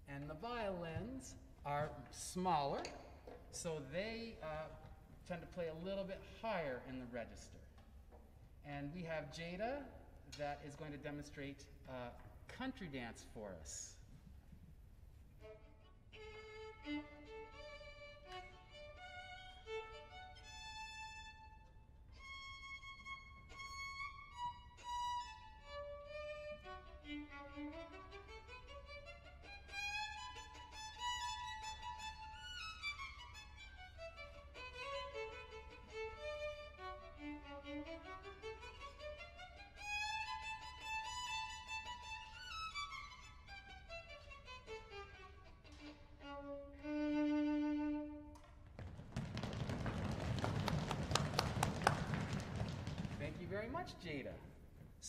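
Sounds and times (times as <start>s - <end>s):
solo violin dance tune: 15.1s - 54.2s.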